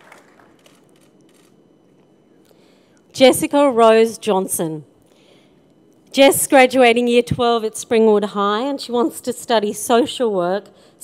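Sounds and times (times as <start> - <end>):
applause: 0.0 - 0.8.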